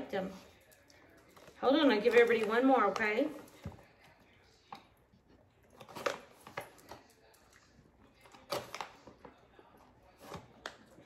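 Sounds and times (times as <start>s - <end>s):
dogs chewing treats: 0.2s - 11.0s.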